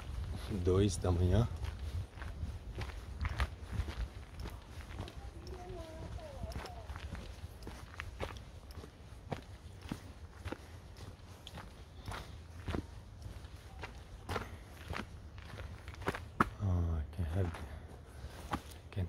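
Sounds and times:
person speaking: 4.6 - 7.3.

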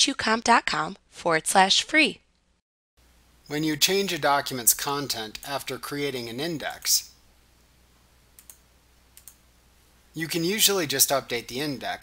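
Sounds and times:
computer mouse clicks: 8.4 - 8.6, 9.2 - 9.4.

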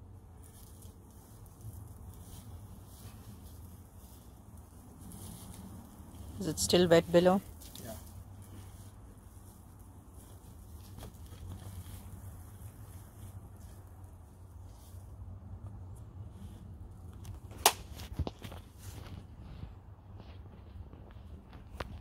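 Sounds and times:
straw rustling and crackling: 0.2 - 19.6.

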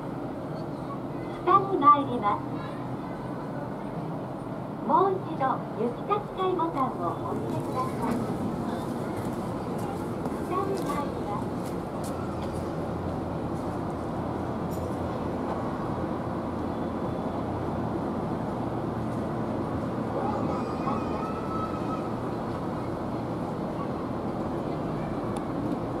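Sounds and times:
low rumble of road traffic: 0.0 - 26.0
faint distant voices: 20.0 - 25.9.

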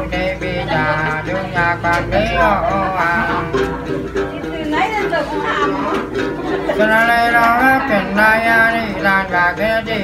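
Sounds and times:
plucked lute: 0.0 - 10.0.

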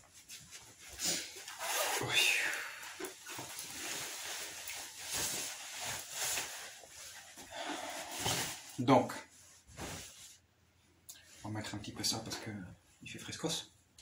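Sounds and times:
fabric rustling: 0.0 - 10.6.

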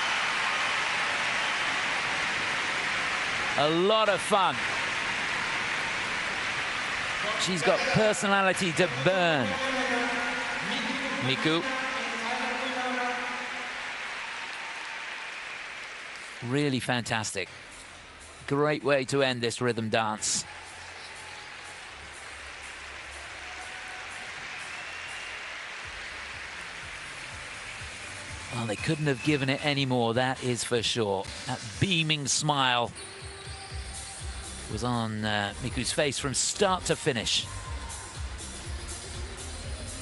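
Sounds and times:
audience applauding: 0.0 - 17.3, 20.4 - 30.5.

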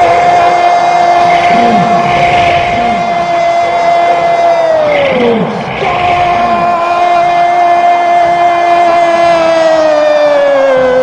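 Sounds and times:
commentator shouting goal cry: 0.0 - 11.0.

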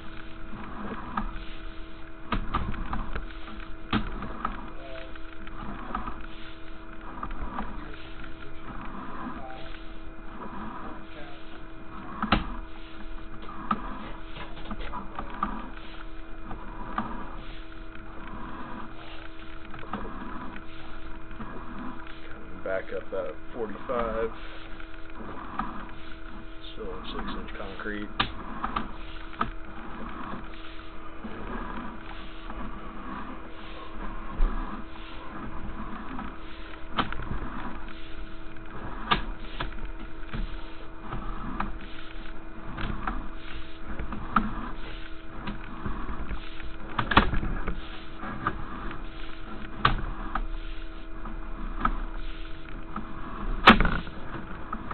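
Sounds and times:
cable scraping and rattling in pipe: 0.0 - 54.9
steady hum: 0.0 - 54.9.

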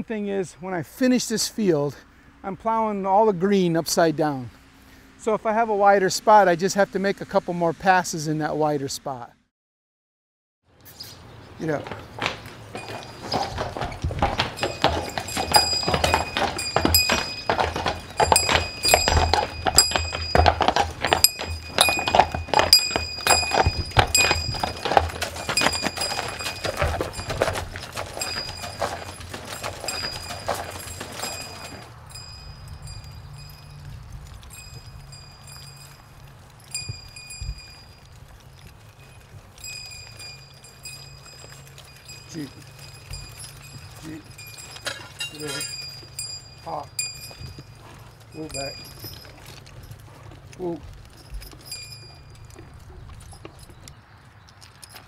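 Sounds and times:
hooves clopping on concrete and gravel: 10.9 - 55.0.

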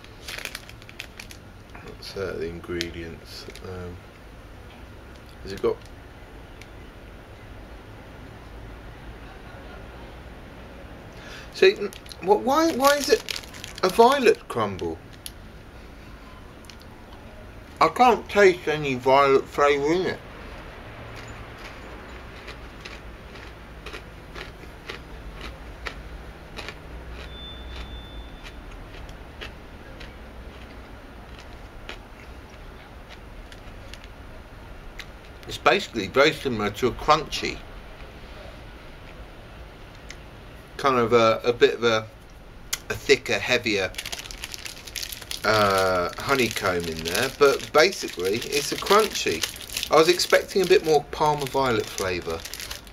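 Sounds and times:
chocolate bar crunching: 0.0 - 1.9, 11.2 - 15.4, 21.2 - 34.2, 42.7 - 52.9
quiet background rumble: 0.0 - 27.3, 28.4 - 52.9
low background hum: 0.0 - 52.9.

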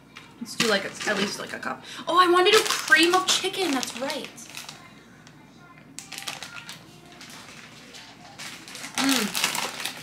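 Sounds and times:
plastic bag crinkling: 2.3 - 5.0, 6.0 - 10.0.

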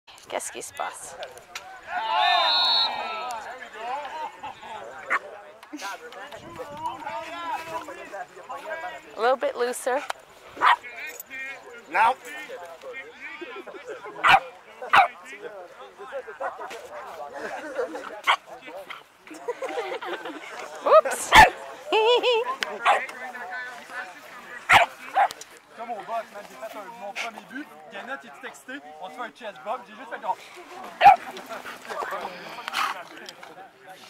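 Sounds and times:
dog barking: 10.6 - 10.8, 14.2 - 15.1, 24.7 - 25.3.

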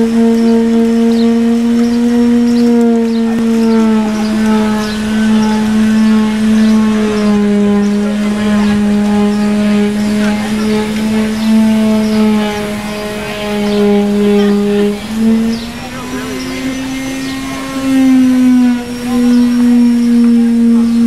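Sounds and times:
low droning tone: 0.0 - 21.0.

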